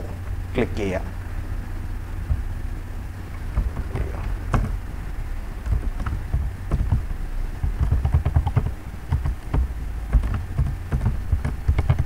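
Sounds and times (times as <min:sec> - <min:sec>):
low rumble: 0:00.0 - 0:12.0
computer keyboard typing: 0:07.7 - 0:12.0.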